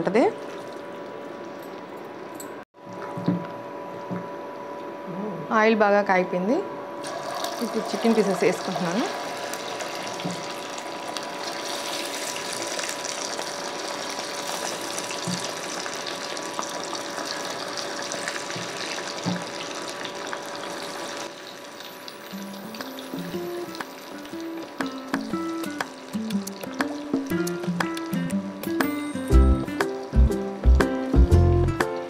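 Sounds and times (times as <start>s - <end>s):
chicken deep-frying in oil: 7.0s - 28.0s
background music: 23.2s - 32.0s.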